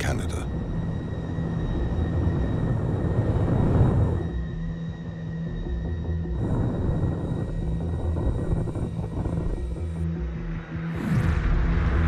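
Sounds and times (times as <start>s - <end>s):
low music drone: 0.0s - 12.0s.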